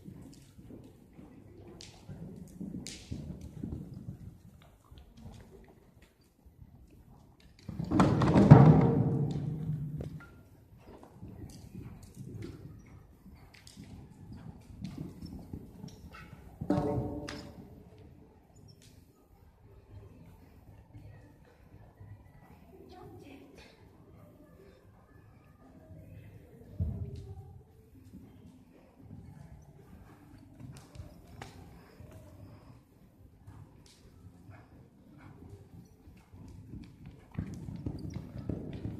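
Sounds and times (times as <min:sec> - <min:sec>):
horse hooves thudding on sand: 0:00.0 - 0:05.9, 0:07.5 - 0:17.8, 0:33.4 - 0:38.9.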